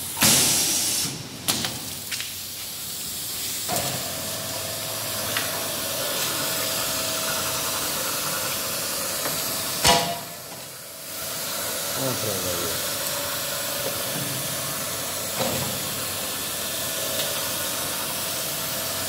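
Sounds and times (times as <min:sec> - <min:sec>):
machine hissing: 0:00.0 - 0:19.0.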